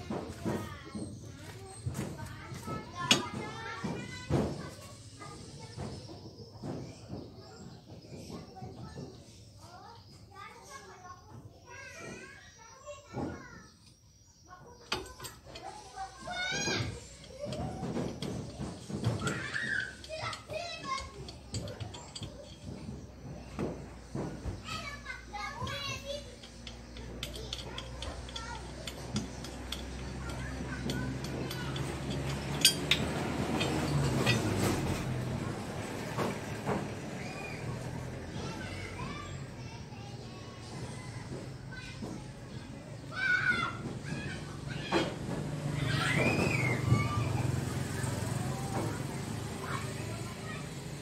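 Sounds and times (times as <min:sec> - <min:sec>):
children calling and playing: 0:00.0 - 0:51.0
metallic clinks and knocks: 0:14.8 - 0:39.0.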